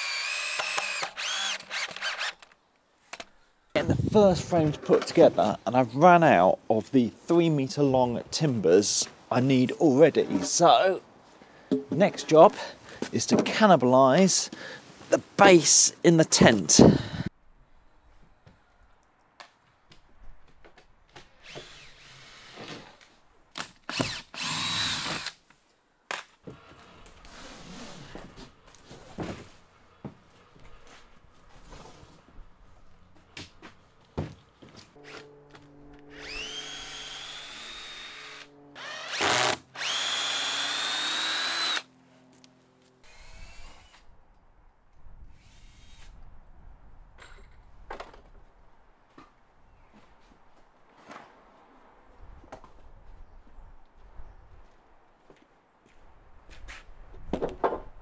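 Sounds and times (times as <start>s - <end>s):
cordless drill whining: 0.0s - 2.5s, 23.9s - 25.3s, 36.0s - 41.9s, 43.0s - 44.1s.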